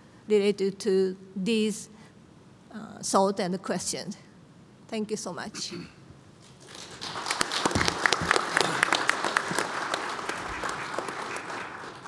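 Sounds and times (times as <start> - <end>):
audience applauding: 6.6 - 12.0.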